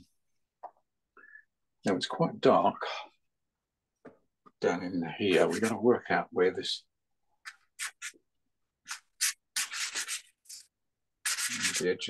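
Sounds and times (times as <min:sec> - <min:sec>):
pastel scraping on paper: 0:05.3 - 0:05.8, 0:07.4 - 0:08.2, 0:08.8 - 0:12.0.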